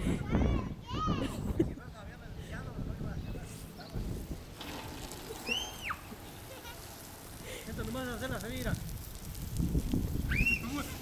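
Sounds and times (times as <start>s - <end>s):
lawn sprinklers spraying water: 3.6s - 11.0s
person laughing: 6.4s - 7.7s.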